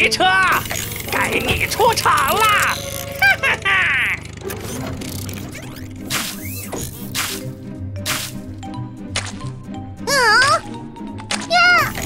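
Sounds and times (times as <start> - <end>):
cartoon ratcheting gear whirr: 0.0 - 8.4
cackling laugh: 3.0 - 4.4.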